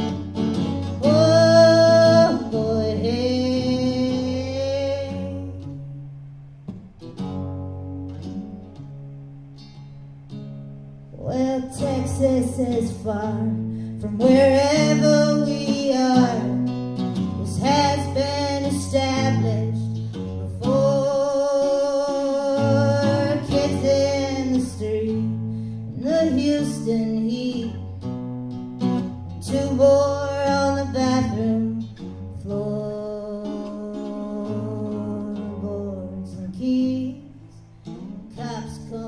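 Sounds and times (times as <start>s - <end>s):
woman singing folk song: 0.0s - 6.2s, 11.1s - 39.0s
acoustic guitar: 0.0s - 39.0s.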